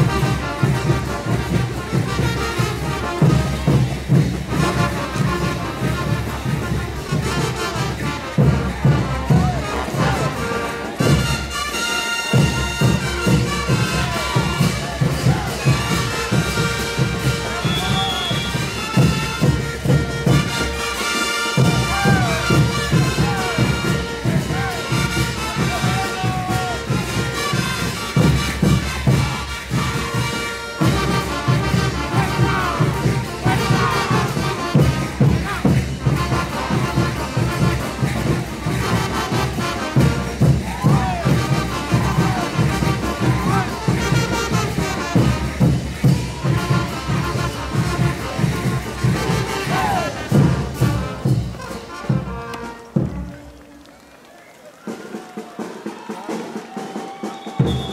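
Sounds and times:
bass drum beat: 0.0s - 11.5s, 12.3s - 20.8s, 21.6s - 53.4s
brass band playing: 0.0s - 57.9s.

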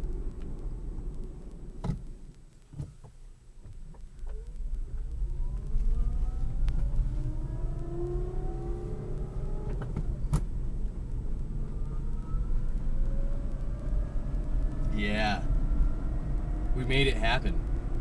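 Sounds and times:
road and tyre rumble: 0.0s - 18.0s
electric motor whine: 5.4s - 9.9s.

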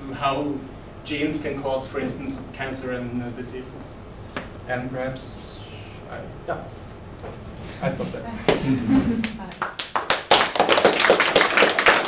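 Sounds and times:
people talking: 0.0s - 4.0s, 4.7s - 6.7s
audience applauding: 9.2s - 12.0s.

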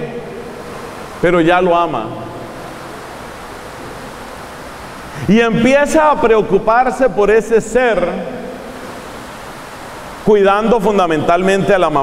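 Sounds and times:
room noise hiss: 0.0s - 12.0s.

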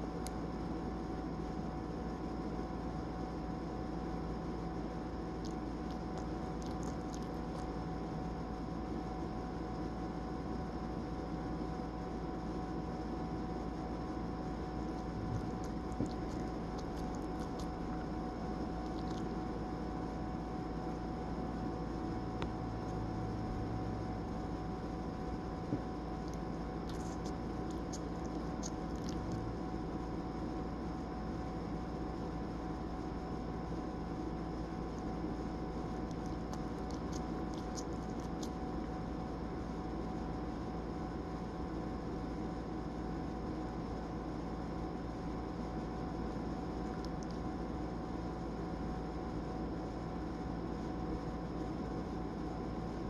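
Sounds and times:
room hum and hiss: 0.0s - 53.0s
dog mouth smacking clicks: 5.4s - 7.7s, 14.9s - 19.3s, 26.2s - 29.4s, 36.0s - 38.6s, 47.0s - 47.4s.

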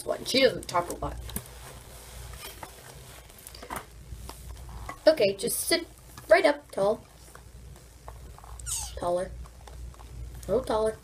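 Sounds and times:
cat meowing: 8.6s - 9.0s.

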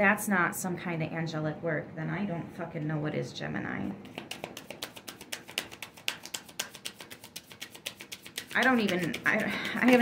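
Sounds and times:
cards being shuffled: 4.0s - 10.0s.

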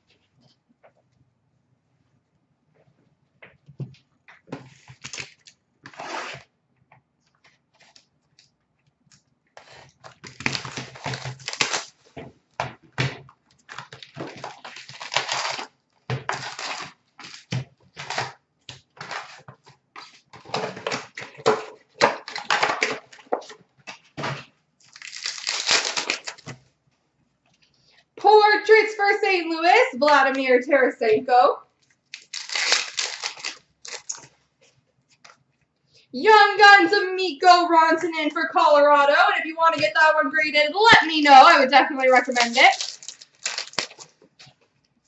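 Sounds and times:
foil packs crinkling and tearing: 4.7s - 6.4s, 9.6s - 12.0s, 13.6s - 18.4s, 24.8s - 26.5s, 32.1s - 34.3s, 42.2s - 44.2s
cardboard box tearing open: 10.2s - 11.9s, 14.3s - 15.7s, 16.3s - 18.3s, 24.9s - 26.4s, 32.2s - 34.2s, 42.7s - 44.0s.

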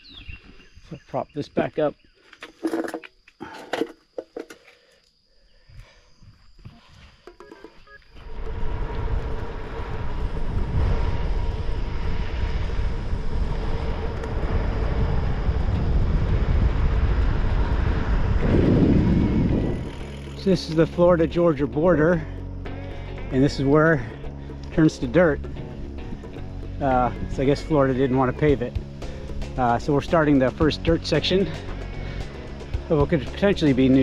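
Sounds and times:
wind rushing on microphone: 8.1s - 34.0s.

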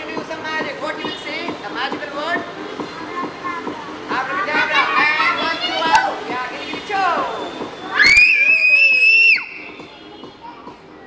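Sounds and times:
party music: 0.0s - 11.0s
children's voices: 2.8s - 6.3s
high scream: 7.9s - 9.7s.

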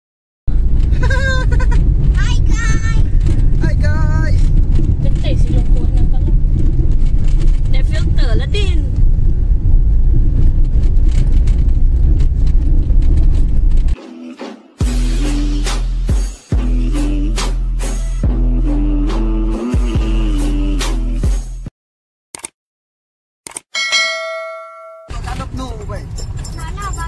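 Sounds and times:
car cabin road rumble: 0.5s - 14.0s, 25.1s - 27.0s.

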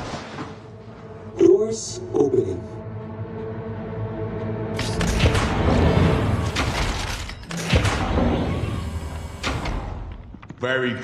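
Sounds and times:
tense film score: 0.0s - 11.0s.

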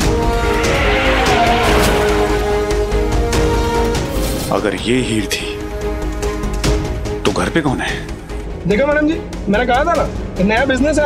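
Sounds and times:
car tyres screeching: 0.0s - 4.1s
dramatic background music: 0.0s - 11.0s.

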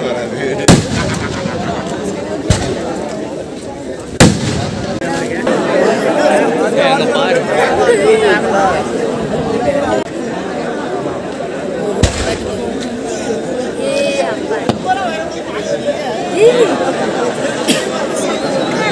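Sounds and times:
firework bangs: 0.6s - 3.0s, 4.2s - 5.1s, 12.0s - 12.6s.

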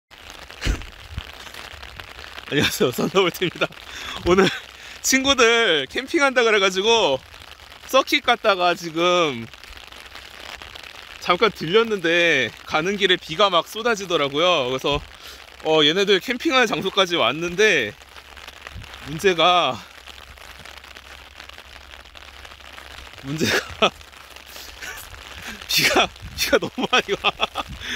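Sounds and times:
heavy rain on umbrella: 0.1s - 27.9s.

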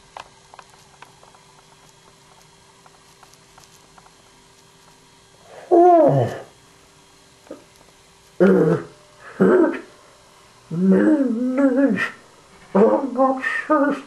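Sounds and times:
low steady hum: 0.0s - 14.0s
loud drawn-out vocal cry: 5.5s - 6.5s, 10.7s - 14.0s.

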